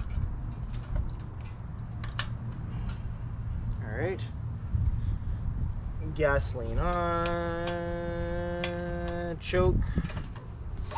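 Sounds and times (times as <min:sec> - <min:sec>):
steady low rumble: 0:00.0 - 0:10.9.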